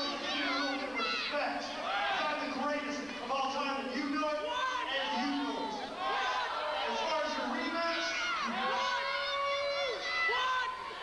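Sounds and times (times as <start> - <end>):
man talking into a microphone: 0.0 - 5.8, 6.8 - 8.8.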